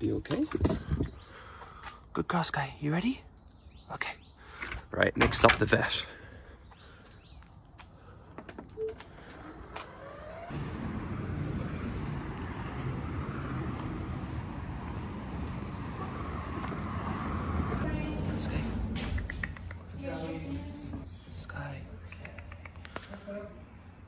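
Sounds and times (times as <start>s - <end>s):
low outdoor rumble: 9.6s - 22.2s.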